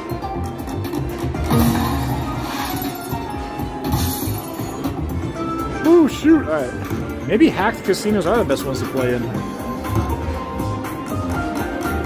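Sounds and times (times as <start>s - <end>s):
casino background noise: 0.0s - 12.0s
slot machine bonus music: 0.1s - 12.0s
coin landing: 1.5s - 3.3s.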